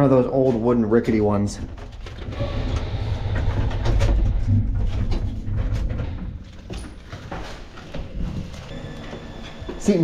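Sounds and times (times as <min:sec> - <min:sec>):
elevator running: 0:07.7 - 0:10.0.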